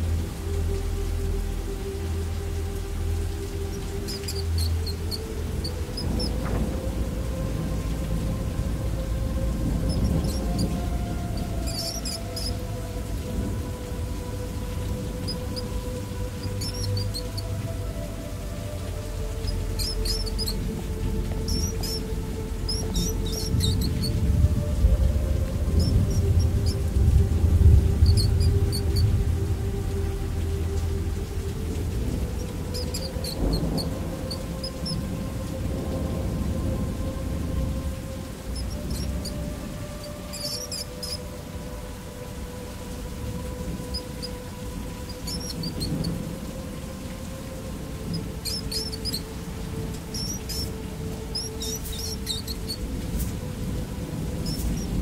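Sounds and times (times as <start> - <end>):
rain: 0.0 - 55.0
soft background music: 0.0 - 55.0
distant thunder rumble: 3.0 - 55.0
mouse squeaks: 4.1 - 6.4, 11.6 - 12.6, 16.4 - 17.5, 19.4 - 20.6, 21.4 - 22.1, 22.7 - 24.2, 25.7 - 26.8, 28.0 - 29.0, 32.7 - 35.0, 38.6 - 39.4, 40.3 - 41.2, 45.1 - 46.1, 48.4 - 49.2, 50.1 - 52.8.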